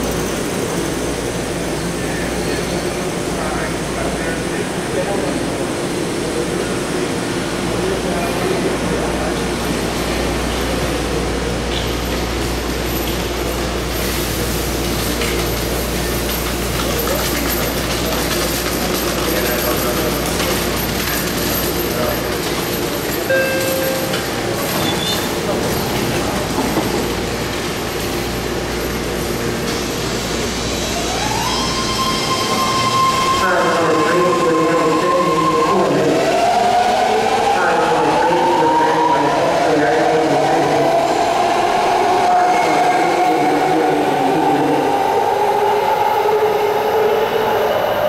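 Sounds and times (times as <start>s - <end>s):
train propulsion whine: 0.0s - 48.0s.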